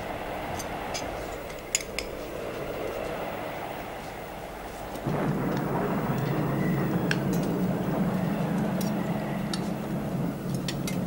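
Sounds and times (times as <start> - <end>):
deep steady rumble: 0.0 - 11.0
steady background hiss: 0.0 - 11.0.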